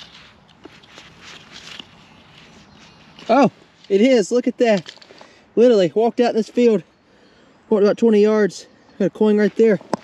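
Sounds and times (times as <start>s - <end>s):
soil scraping and crumbling: 0.0s - 6.8s.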